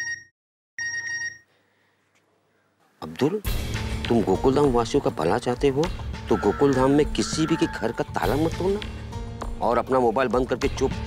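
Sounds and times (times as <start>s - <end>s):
phone message alert beeping: 6.3s - 8.0s.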